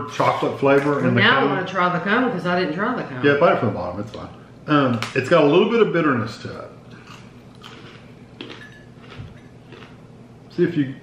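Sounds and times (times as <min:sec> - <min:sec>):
chewing crunchy cone: 0:06.9 - 0:10.0.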